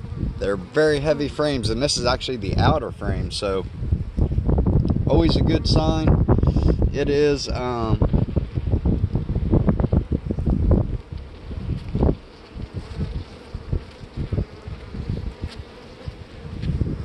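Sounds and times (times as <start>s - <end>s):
honey bees buzzing: 0.0s - 17.0s
wind buffeting microphone: 0.0s - 17.0s.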